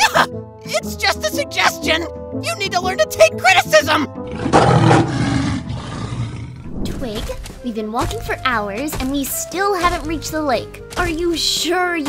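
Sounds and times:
background music: 0:00.0 - 0:12.0
big cat roaring: 0:04.3 - 0:07.0.

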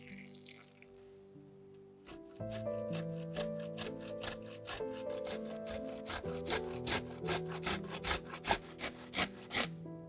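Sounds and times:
broccoli rasping on grater: 0:02.0 - 0:09.7.

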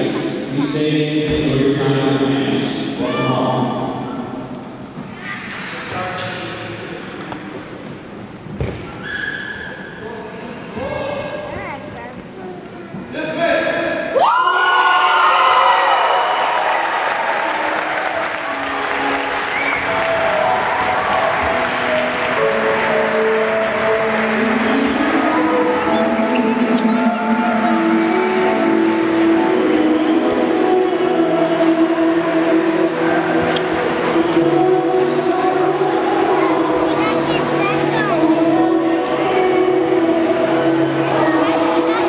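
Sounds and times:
crowd cheering and whooping: 0:14.2 - 0:22.7
excited crowd voices: 0:14.2 - 0:42.0
applause: 0:14.6 - 0:25.1.

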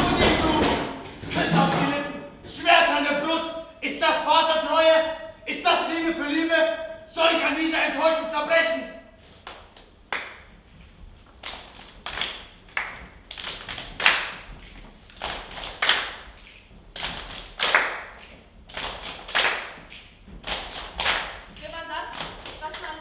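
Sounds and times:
body percussion hits: 0:00.0 - 0:02.8, 0:09.5 - 0:23.0.

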